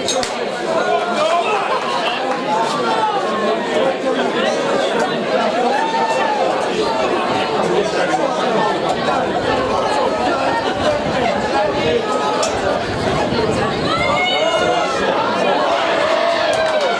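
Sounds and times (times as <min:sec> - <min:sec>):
crowd babble: 0:00.0 - 0:16.9.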